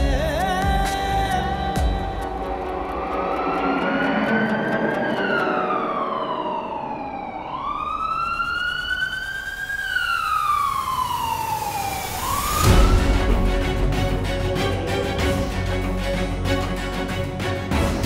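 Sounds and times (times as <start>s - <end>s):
emergency siren wailing: 2.2s - 15.8s.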